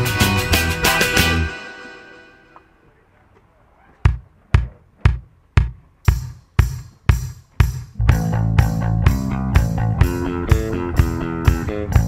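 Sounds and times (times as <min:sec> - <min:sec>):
drum beat with sharp hits: 0:00.0 - 0:02.2, 0:04.0 - 0:12.0.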